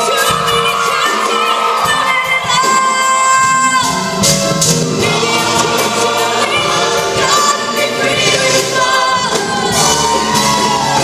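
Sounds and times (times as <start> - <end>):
large choir singing upbeat song: 3.8 - 11.0.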